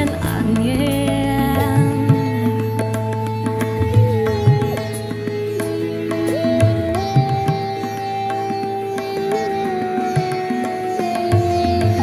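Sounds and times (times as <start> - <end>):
live pop band playing: 0.0 - 12.0.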